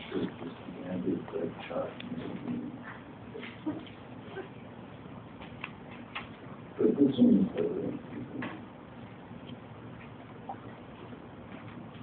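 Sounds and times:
room hubbub: 0.0 - 12.0.

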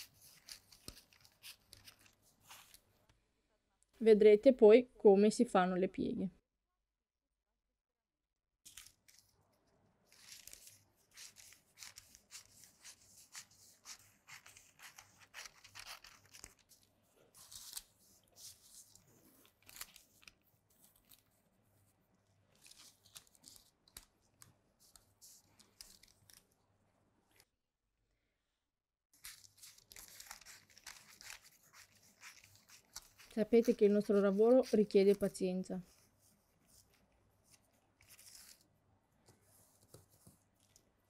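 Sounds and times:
scissors cutting paper: 10.3 - 20.4, 29.2 - 35.4.

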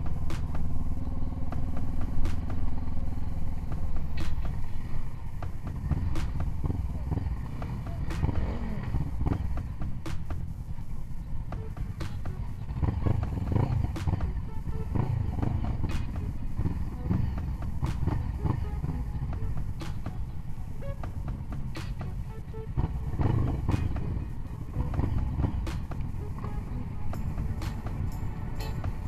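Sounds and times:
motorcycle engines rumbling: 0.0 - 29.0
music playing: 0.0 - 29.0.

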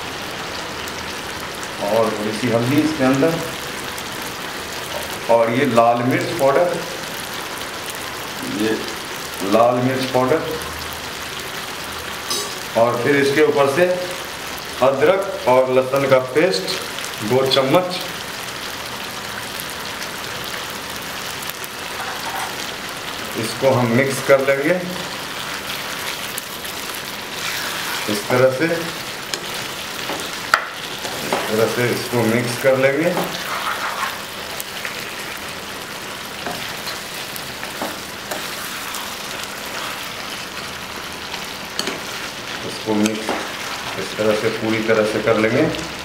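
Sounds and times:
chicken sizzling in oil: 0.0 - 46.0.

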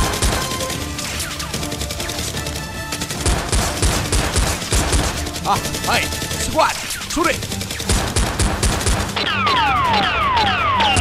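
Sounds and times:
background music: 0.0 - 11.0
rapid gunfire: 0.0 - 11.0.

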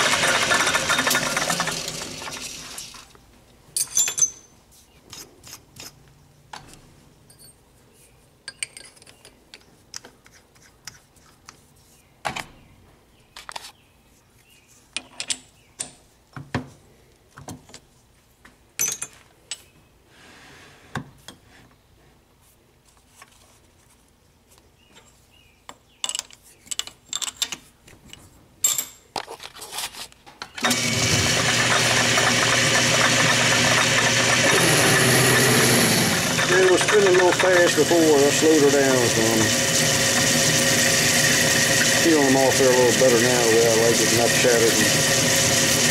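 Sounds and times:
metal lathe running: 0.0 - 3.0, 30.6 - 45.9
metallic clicks and clinks: 3.8 - 4.5.

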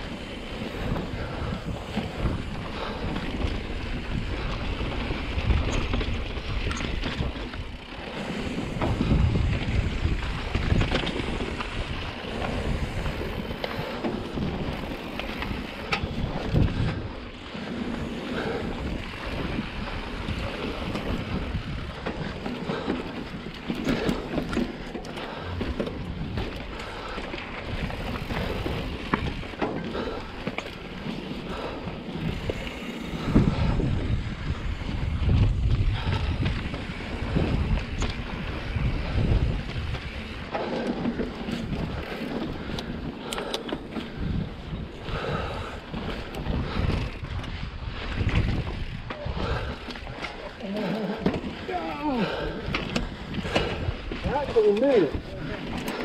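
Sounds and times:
bike knocks and rattles: 0.0 - 56.0
tyres rumbling on rock: 0.0 - 56.0
wind buffeting microphone: 0.0 - 56.0.

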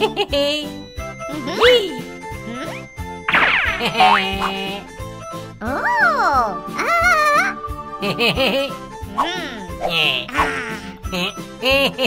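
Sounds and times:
bouncy cartoon music: 0.0 - 12.0.

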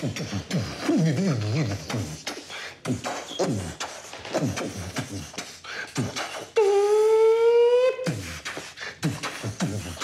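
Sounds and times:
beatboxing mouth percussion: 0.0 - 10.0.

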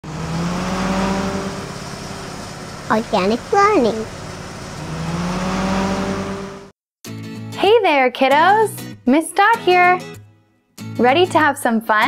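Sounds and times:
bus engine: 0.0 - 6.8.

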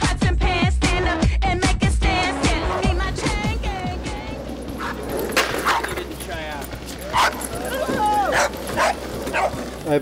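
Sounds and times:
small dog yipping and whining: 7.2 - 9.6.

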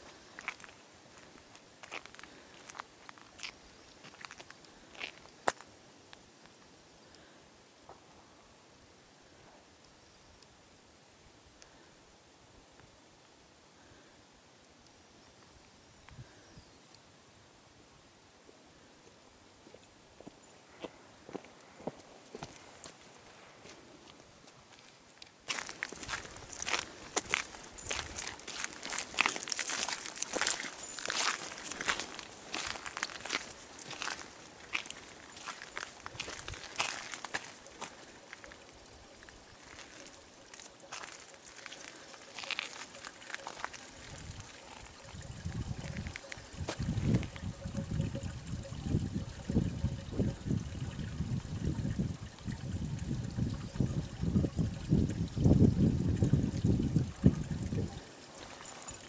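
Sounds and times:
footsteps in wet snow: 0.0 - 5.7, 19.7 - 47.6, 58.3 - 59.0.

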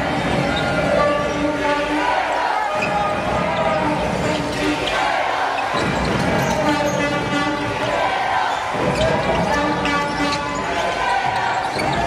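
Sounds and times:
voices of players and spectators: 0.0 - 12.0.

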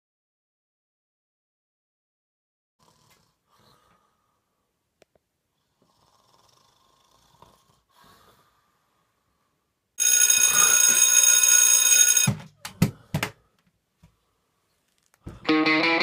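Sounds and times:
alarm clock ringing: 10.0 - 12.4.

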